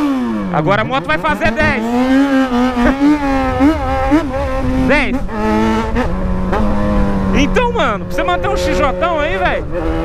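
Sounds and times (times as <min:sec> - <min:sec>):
motorcycle engine at high revs: 0:00.0 - 0:10.0
wind rumbling on microphone: 0:01.3 - 0:10.0.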